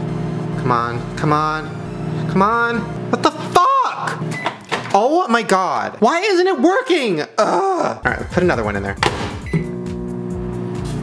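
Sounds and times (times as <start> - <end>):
microwave oven humming: 0.0 - 5.9, 9.0 - 11.0
thump: 9.0 - 9.4.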